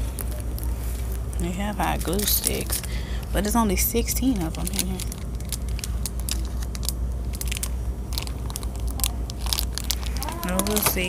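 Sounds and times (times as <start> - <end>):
low steady rumble: 0.0 - 11.0
plastic packet crinkling: 4.2 - 11.0.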